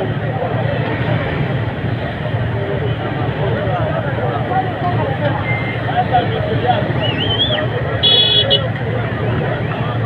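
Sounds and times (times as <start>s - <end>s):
crowd chatter: 0.0s - 10.0s
high-pitched vehicle horn honking: 8.0s - 8.7s.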